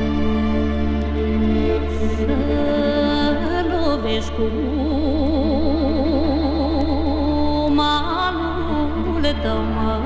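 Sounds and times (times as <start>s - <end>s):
woman singing folk song: 1.9s - 10.0s.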